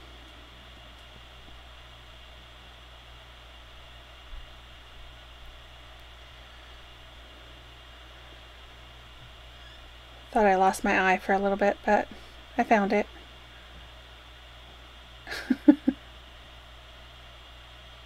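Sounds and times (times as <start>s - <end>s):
low hum: 0.0s - 18.0s
steady hiss: 0.0s - 18.0s.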